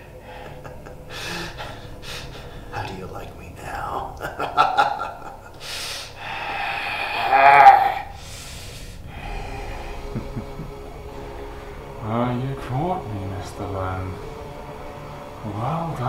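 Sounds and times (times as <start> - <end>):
man laughing: 0.2 - 6.2, 9.8 - 10.9
sharp breaths: 5.6 - 7.1, 8.0 - 10.1.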